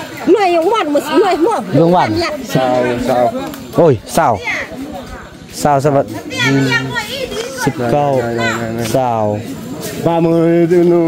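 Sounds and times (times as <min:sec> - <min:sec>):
people talking and calling: 0:00.0 - 0:11.0.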